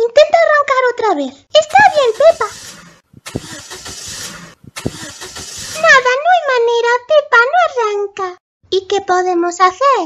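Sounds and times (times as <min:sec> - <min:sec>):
car engine cranking and sputtering: 0:01.6 - 0:06.2.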